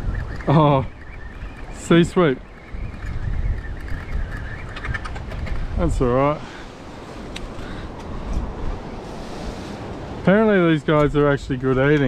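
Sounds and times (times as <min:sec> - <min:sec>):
ocean surf rumbling: 0:00.0 - 0:12.0
wind: 0:00.0 - 0:12.0.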